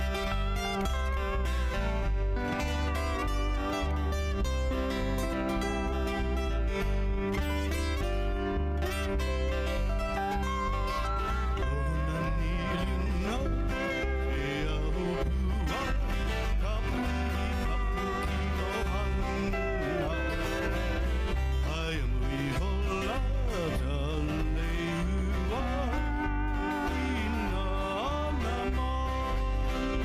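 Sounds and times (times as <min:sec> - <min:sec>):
acoustic guitar: 0:00.0 - 0:30.0
bass guitar pulse: 0:00.0 - 0:30.0
lap steel guitar gliding notes: 0:00.0 - 0:30.0
men singing: 0:11.5 - 0:30.0.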